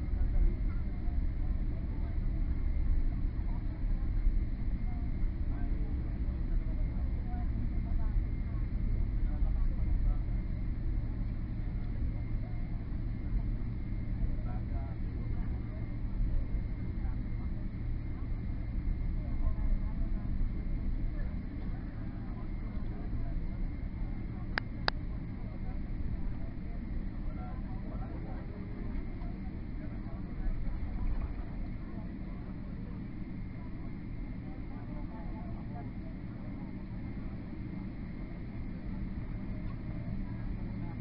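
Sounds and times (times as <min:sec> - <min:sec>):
airplane cabin rumble: 0:00.0 - 0:41.0.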